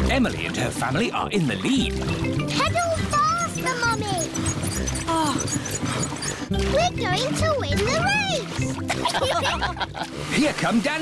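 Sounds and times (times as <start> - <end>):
cartoon background music: 0.0 - 10.5.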